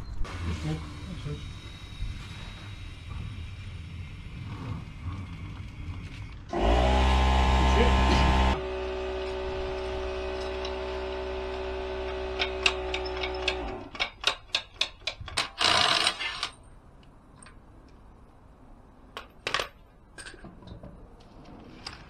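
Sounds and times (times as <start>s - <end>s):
air compressor motor humming: 6.5s - 13.8s.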